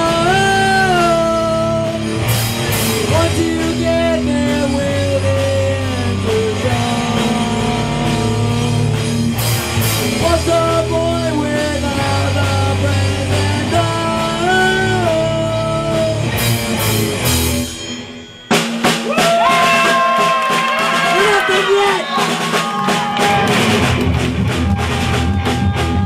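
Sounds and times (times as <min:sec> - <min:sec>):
lead vocalist singing: 0:00.0 - 0:02.2, 0:03.0 - 0:09.2, 0:10.0 - 0:16.4
rock band playing live: 0:00.0 - 0:26.0.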